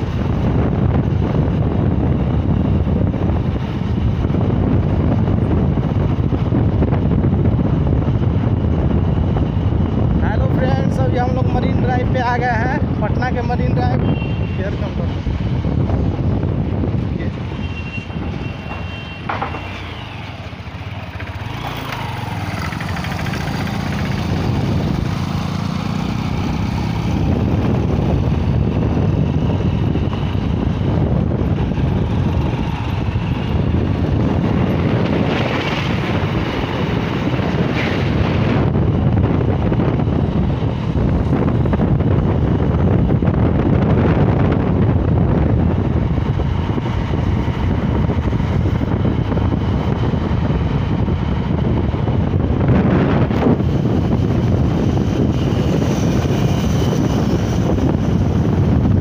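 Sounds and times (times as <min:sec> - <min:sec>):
road and wind rush: 0:00.0 - 0:59.0.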